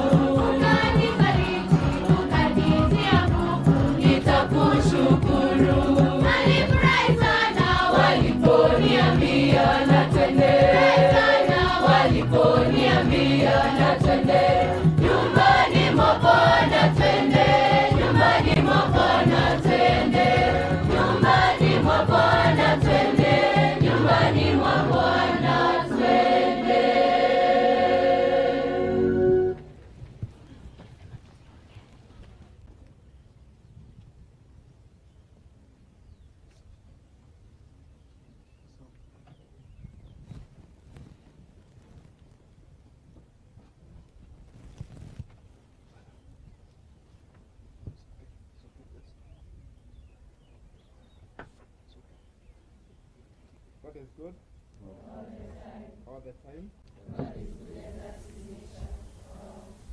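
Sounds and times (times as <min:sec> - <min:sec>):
girls' choir singing a hymn: 0:00.0 - 0:29.6, 0:54.8 - 0:56.1, 0:57.0 - 0:59.9.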